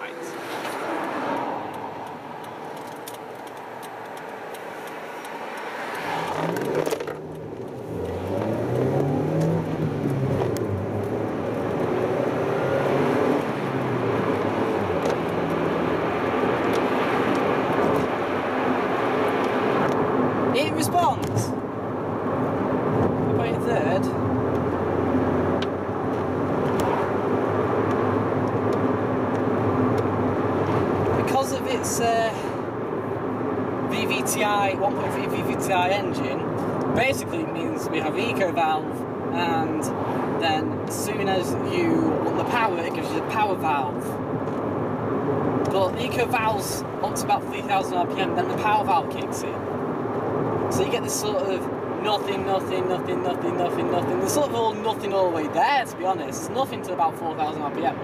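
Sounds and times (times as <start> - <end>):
car engine revving: 0.0 - 32.0
road noise: 0.0 - 58.0.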